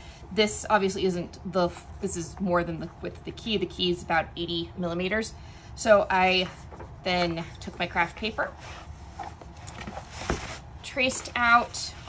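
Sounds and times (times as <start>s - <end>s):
paper rustling and sliding: 8.5s - 12.0s.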